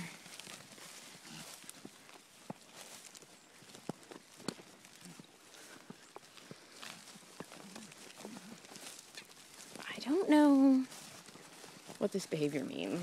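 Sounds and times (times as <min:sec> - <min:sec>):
animal steps on grass: 0:00.0 - 0:13.0
faint low grunts: 0:01.2 - 0:01.7.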